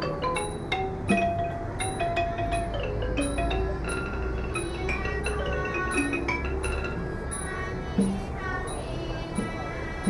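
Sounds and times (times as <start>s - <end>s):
wooden xylophone playing runs: 0.0s - 9.7s
low traffic rumble: 0.0s - 10.0s.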